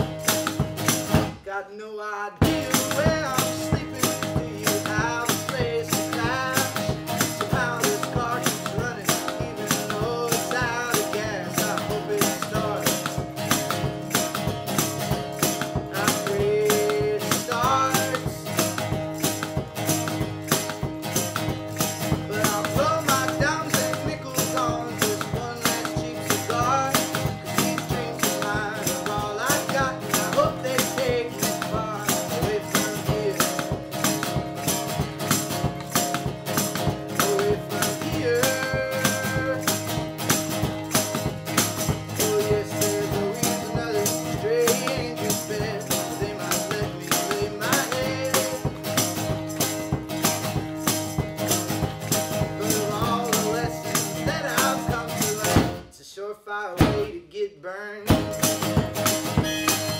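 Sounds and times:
percussive beat: 0:00.0 - 0:01.5, 0:02.4 - 0:55.9, 0:56.8 - 0:57.2, 0:58.1 - 0:59.9
acoustic guitar strumming: 0:00.0 - 0:01.6, 0:02.3 - 0:56.0, 0:56.8 - 0:57.2, 0:58.1 - 0:59.9
harmonica melody: 0:59.2 - 0:59.9.

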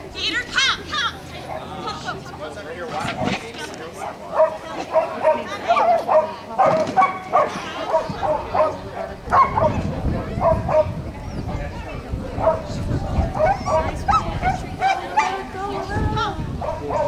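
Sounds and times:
dog barking: 0:04.3 - 0:11.0, 0:12.4 - 0:15.4, 0:16.6 - 0:17.0.

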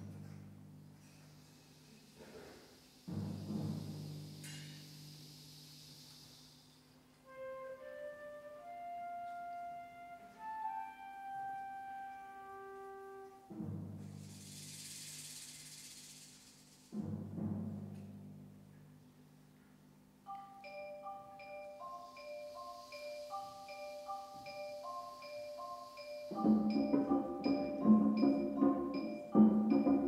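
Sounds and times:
wind band playing: 0:07.2 - 0:13.6, 0:23.6 - 0:30.0
held high notes: 0:20.3 - 0:30.0
high shimmering wash: 0:20.6 - 0:29.4.

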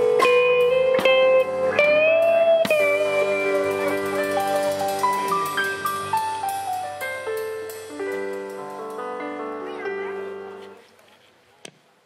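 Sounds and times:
wavering lead note: 0:00.0 - 0:06.7
live band final chord ringing: 0:00.0 - 0:10.6.

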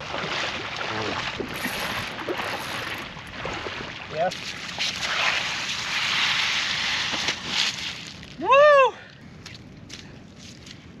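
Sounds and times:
water splashing: 0:00.0 - 0:08.4
person whooping shout: 0:08.4 - 0:09.0.

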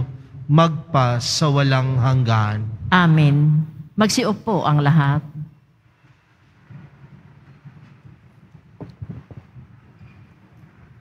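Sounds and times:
congregation shuffling and settling: 0:05.6 - 0:11.0.

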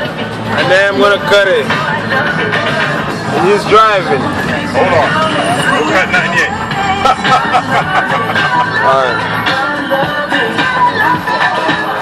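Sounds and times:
moving car: 0:00.0 - 0:11.2
voices talking: 0:00.5 - 0:11.6
car radio playing: 0:00.5 - 0:12.0.

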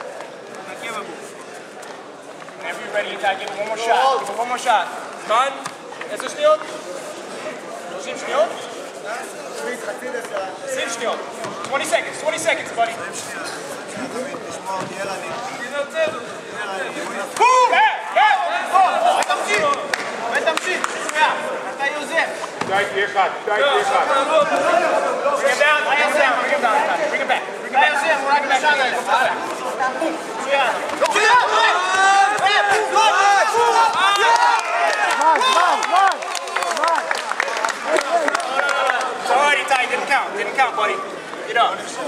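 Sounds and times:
crowd shouting and cheering: 0:17.1 - 0:29.4, 0:30.4 - 0:42.0
men shouting encouragement: 0:31.0 - 0:36.8.

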